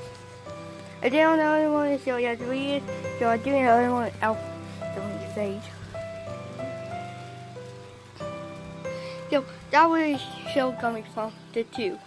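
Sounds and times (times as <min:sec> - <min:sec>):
blower fan running: 0:00.0 - 0:11.8
foam flakes pattering on vinyl: 0:00.0 - 0:12.0.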